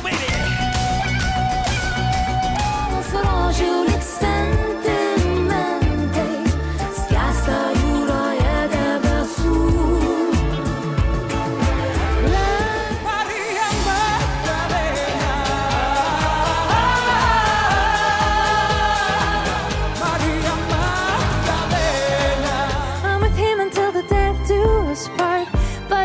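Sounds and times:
pop song with female vocal: 2.5s - 26.0s.

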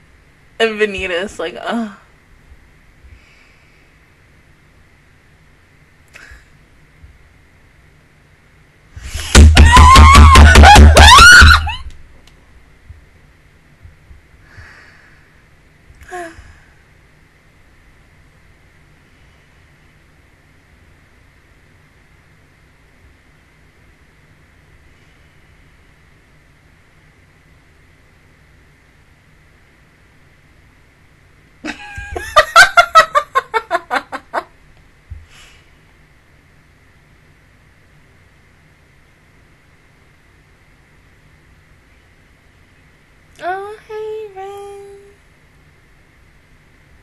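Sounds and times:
faint room hiss: 0.0s - 47.0s
woman laughing: 9.6s - 11.9s, 31.6s - 34.5s
woman screaming with delight: 9.6s - 11.9s
woman squealing: 9.6s - 11.9s.

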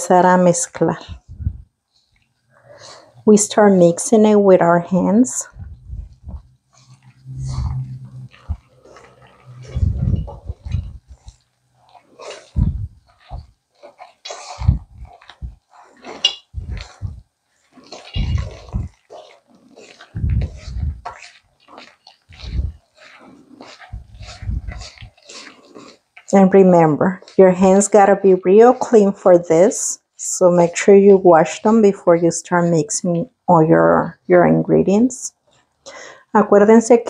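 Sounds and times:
hand squelching wet batter: 0.8s - 36.2s.

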